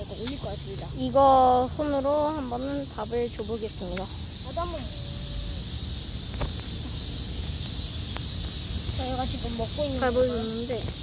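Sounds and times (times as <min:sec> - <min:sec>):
insects droning: 0:00.0 - 0:11.0
faint clicks: 0:03.8 - 0:04.1.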